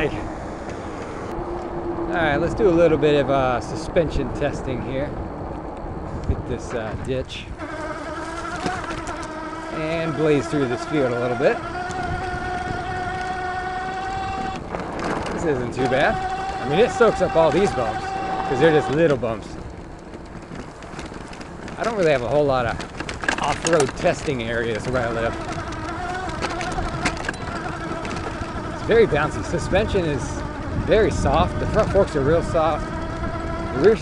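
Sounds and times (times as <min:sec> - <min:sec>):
electric hub motor whining: 0:00.0 - 0:34.0
tyres rumbling over grass: 0:00.0 - 0:34.0
bike knocking over bumps: 0:07.6 - 0:34.0.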